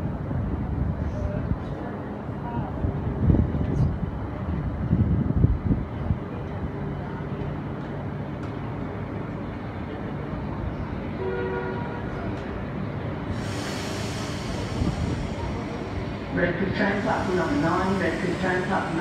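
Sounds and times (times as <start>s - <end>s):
electric train rumbling: 0.0s - 19.0s
train horn toot: 11.2s - 12.2s.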